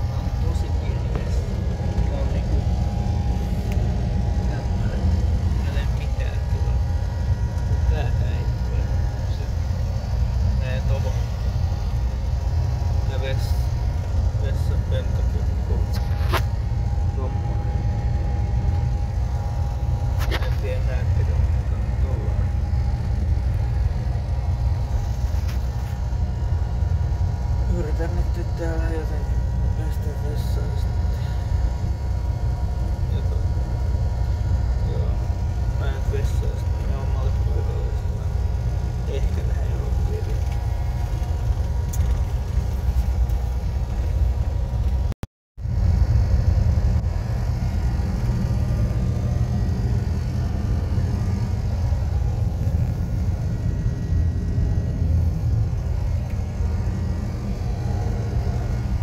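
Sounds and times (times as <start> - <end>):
vehicle rumble from inside cabin: 0.0 - 59.0.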